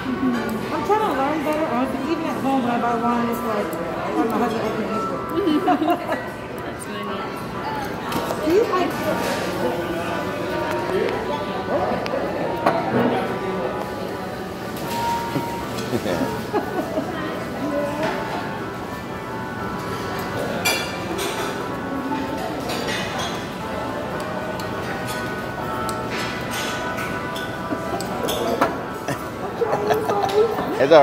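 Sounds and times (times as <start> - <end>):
diners chattering: 0.0 - 31.0
glassware and tableware clinks: 20.2 - 23.6, 24.7 - 29.3.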